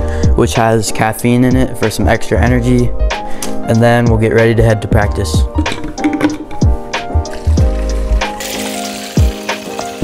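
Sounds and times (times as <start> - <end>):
background music: 0.0 - 10.0
water running into a bottle: 5.6 - 6.6, 7.2 - 10.0.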